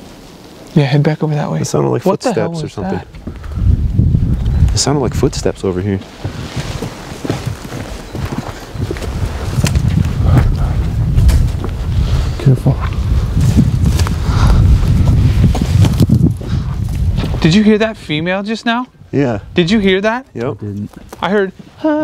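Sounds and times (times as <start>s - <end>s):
low rumble on microphone: 2.6s - 6.6s, 8.7s - 18.2s
footsteps through dry brush: 6.0s - 12.2s, 12.9s - 17.5s.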